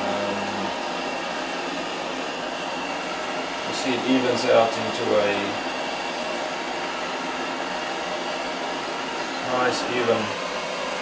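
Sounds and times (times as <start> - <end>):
culinary torch hissing: 0.0 - 11.0.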